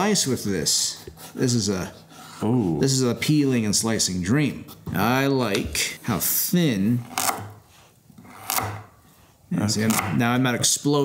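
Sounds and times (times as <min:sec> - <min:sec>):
knife slicing carrot on wooden board: 0:07.1 - 0:07.6, 0:08.2 - 0:08.9, 0:09.7 - 0:10.2.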